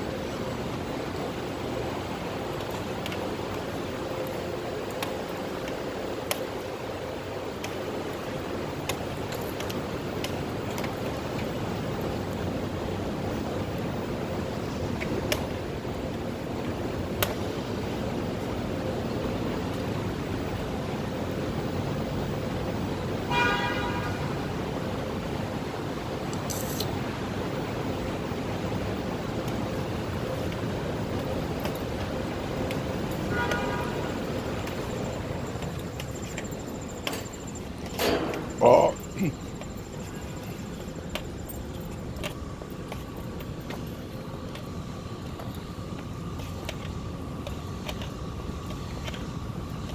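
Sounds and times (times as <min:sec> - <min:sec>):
faint steady tone: 0:00.0 - 0:49.9
industrial background noise: 0:00.0 - 0:49.9
vehicle horn toots: 0:23.3 - 0:24.3, 0:33.3 - 0:34.3.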